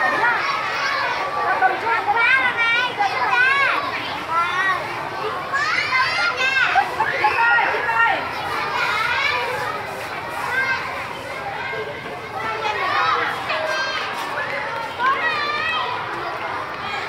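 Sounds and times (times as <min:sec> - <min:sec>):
children chattering: 0:00.0 - 0:17.0.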